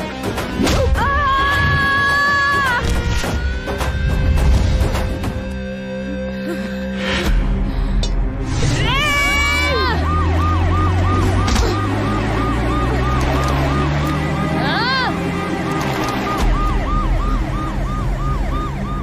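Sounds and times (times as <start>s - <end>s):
low music drone: 2.7s - 19.0s
siren-like warbling tone: 9.6s - 19.0s.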